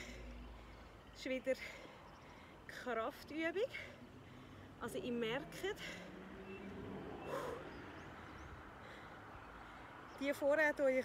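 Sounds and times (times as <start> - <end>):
low outdoor background noise: 0.0 - 11.0.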